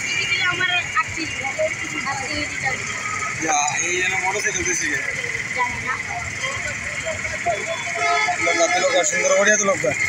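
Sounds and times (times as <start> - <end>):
people talking: 0.0 - 10.0
street traffic: 0.0 - 10.0.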